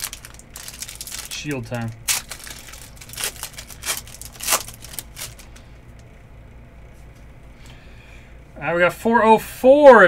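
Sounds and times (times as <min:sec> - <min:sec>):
wrapper being torn open: 0:00.0 - 0:05.6
foil wrapper crinkling: 0:00.0 - 0:05.7.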